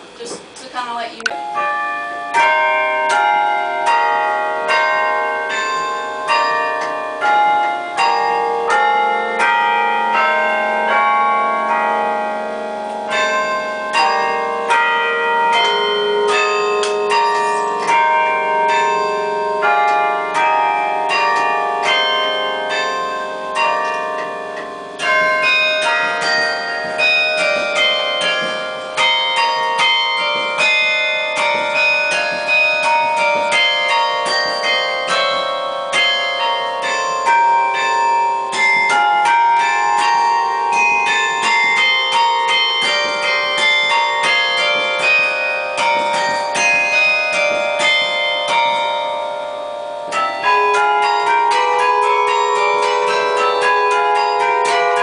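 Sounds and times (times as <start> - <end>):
carillon bells playing melody: 0.0 - 55.0.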